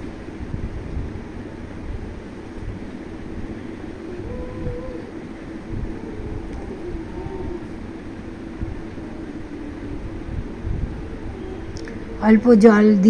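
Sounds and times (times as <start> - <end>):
masala frying with rumbling hiss: 0.0 - 13.0.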